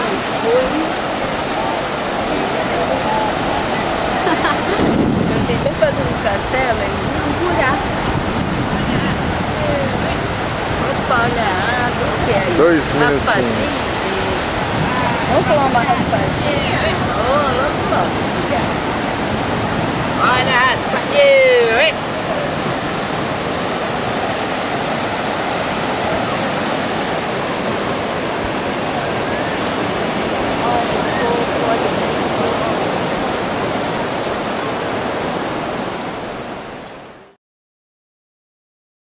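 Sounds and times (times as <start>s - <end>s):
ocean surf on a beach: 0.0s - 37.4s.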